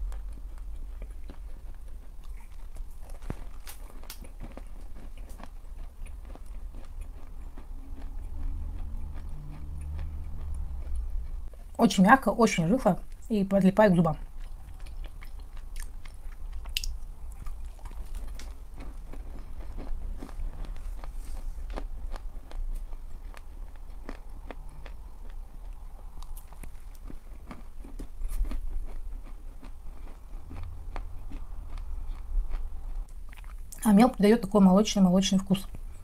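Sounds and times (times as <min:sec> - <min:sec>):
biting and chewing chalk: 0:00.0 - 0:11.8, 0:14.3 - 0:33.6.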